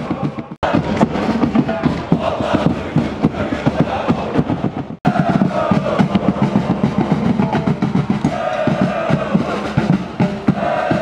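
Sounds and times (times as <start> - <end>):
rapid drumbeats: 0.0 - 11.0
supporters chanting: 0.0 - 11.0.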